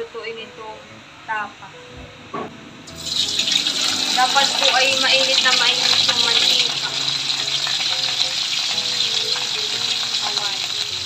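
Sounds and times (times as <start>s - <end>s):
meat sizzling in hot oil: 2.9s - 11.0s.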